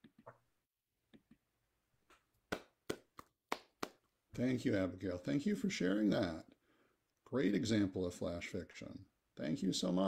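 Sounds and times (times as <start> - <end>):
hand claps: 2.5 - 4.1.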